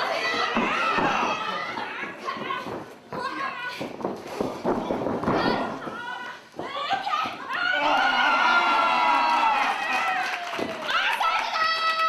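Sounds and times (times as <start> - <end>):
crowd shouting and yelling: 0.0 - 1.9, 6.4 - 12.0.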